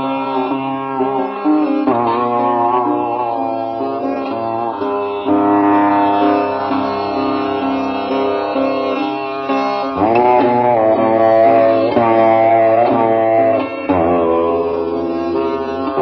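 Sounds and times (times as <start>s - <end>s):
sitar melody: 0.0s - 16.0s.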